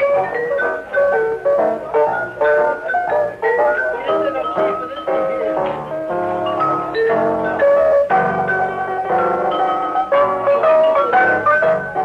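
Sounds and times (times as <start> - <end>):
swing jazz band: 0.0 - 12.0
vibraphone run: 2.5 - 11.8.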